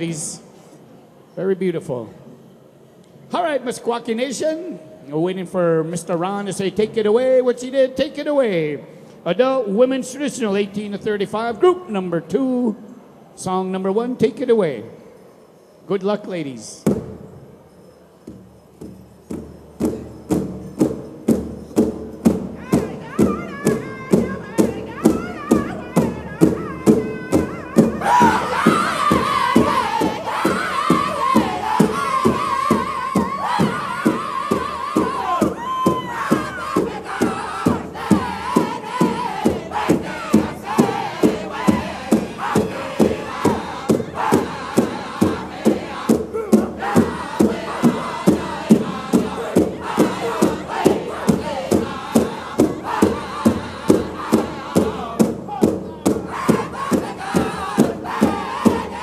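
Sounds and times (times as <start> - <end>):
large drum beating: 18.3 - 59.0
high lead voice singing: 22.6 - 59.0
singers singing in unison: 22.8 - 55.4, 56.0 - 59.0.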